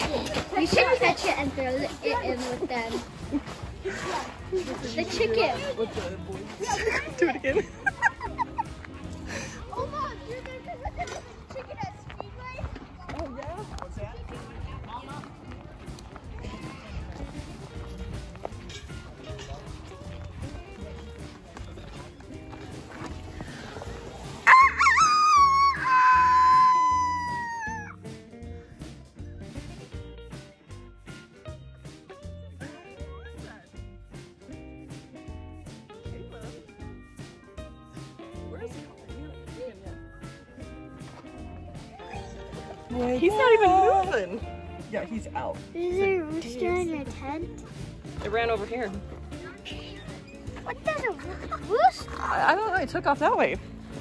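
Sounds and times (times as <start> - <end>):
background music with beat: 0.0 - 11.3, 15.2 - 54.0.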